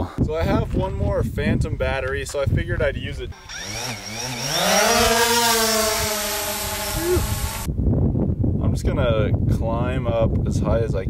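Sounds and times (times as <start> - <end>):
drone propellers buzzing whine: 3.4 - 7.7.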